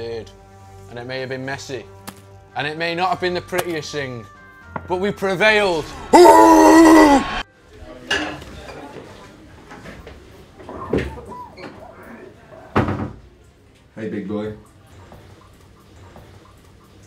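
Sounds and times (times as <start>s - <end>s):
man yelling in triumph: 6.1s - 7.4s.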